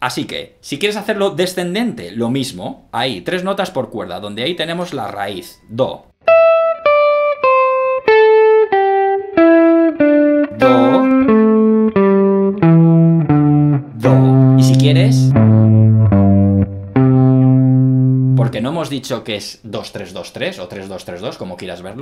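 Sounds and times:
electric guitar picking single notes: 6.2s - 18.8s.

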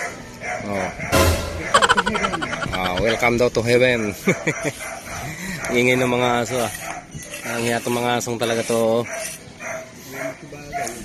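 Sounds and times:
dogs barking: 0.0s - 7.6s, 9.0s - 11.0s.

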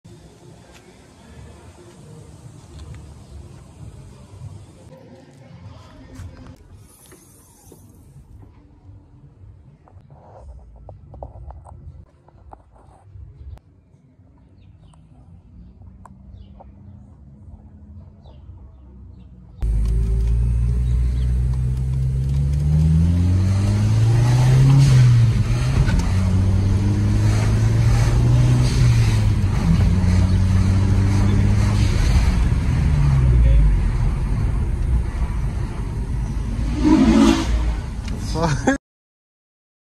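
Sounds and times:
car engine idling: 19.6s - 26.7s
car engine accelerating: 19.6s - 38.4s.

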